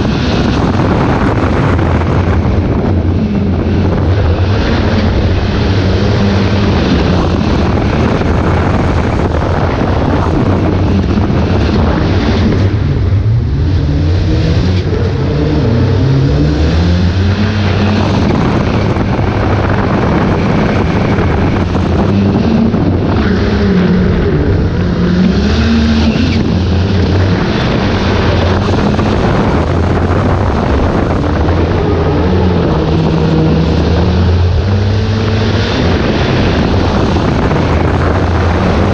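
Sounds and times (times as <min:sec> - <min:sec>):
car engine revving and shifting: 0:00.0 - 0:38.9.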